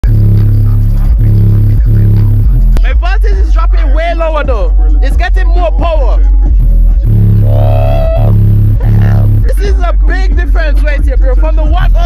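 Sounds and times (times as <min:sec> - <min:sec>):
loud subwoofer bass notes: 0:00.0 - 0:12.0.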